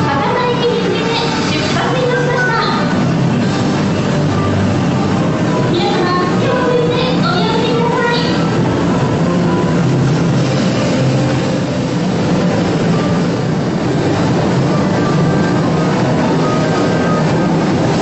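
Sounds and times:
train rushing past: 0:00.0 - 0:18.0.

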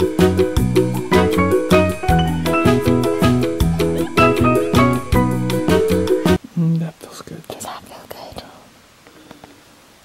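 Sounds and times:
background music: 0:00.0 - 0:06.4
soft whispering voices: 0:06.5 - 0:08.8.

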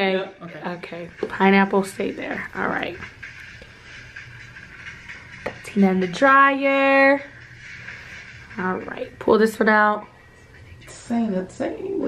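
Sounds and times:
small fan hissing: 0:00.0 - 0:12.0.

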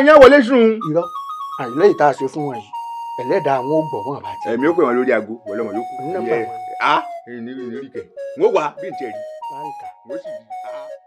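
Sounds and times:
electronic chime-like music: 0:00.0 - 0:11.0
man speaking: 0:00.0 - 0:11.0.

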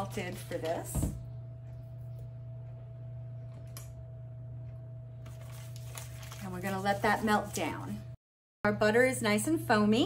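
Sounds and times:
paper wrapper crinkling: 0:00.0 - 0:00.8, 0:05.2 - 0:07.9
steady low hum: 0:00.0 - 0:10.0.

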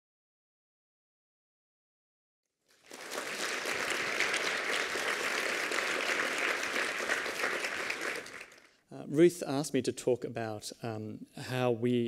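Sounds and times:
audience applauding: 0:02.7 - 0:08.8.

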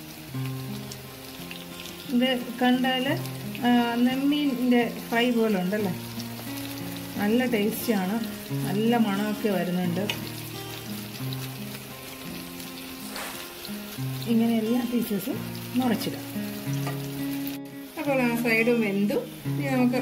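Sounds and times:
fish sizzling in oil: 0:00.0 - 0:20.0
fork moving food in pan: 0:13.0 - 0:13.7.

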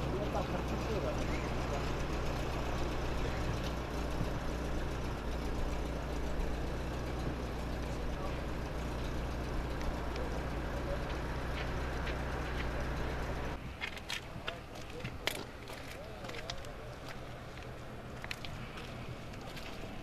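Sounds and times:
engine idling: 0:00.0 - 0:13.6, 0:14.2 - 0:20.0.

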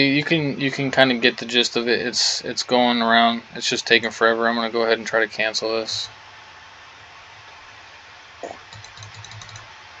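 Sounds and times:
room hiss: 0:00.0 - 0:10.0
computer keyboard typing: 0:08.4 - 0:09.7.

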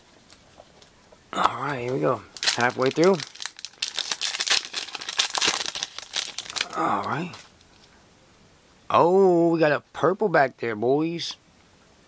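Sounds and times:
wrapper tearing: 0:01.8 - 0:07.5
plastic wrapper crinkling: 0:01.8 - 0:07.9.

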